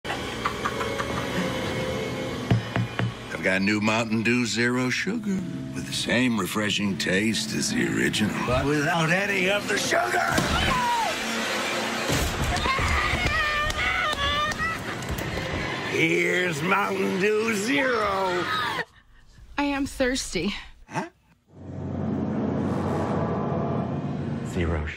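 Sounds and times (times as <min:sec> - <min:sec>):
ominous music: 0:00.2 - 0:10.5, 0:21.4 - 0:24.9
steady rumbling drone: 0:21.5 - 0:24.9.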